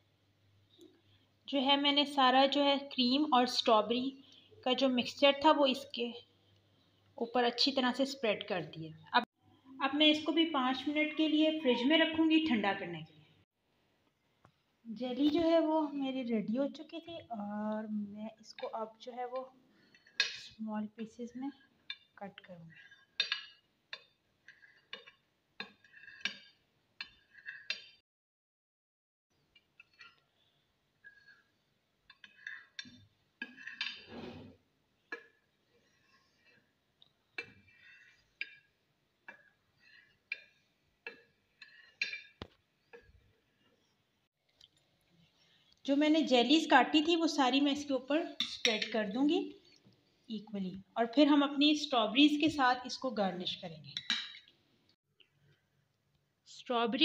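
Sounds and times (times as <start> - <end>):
woman narrating: 1.5 - 6.2, 7.2 - 13.2, 14.9 - 19.5, 20.5 - 21.6, 22.2 - 22.8, 45.8 - 49.6, 50.3 - 54.0, 56.5 - 57.0.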